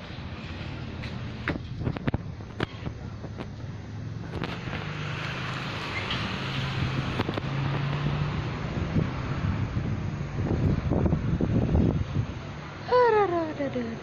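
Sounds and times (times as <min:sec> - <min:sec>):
ceiling fan air rush: 0:00.0 - 0:14.0
low motor hum: 0:00.0 - 0:14.0
air rumbling on microphone: 0:06.6 - 0:13.0.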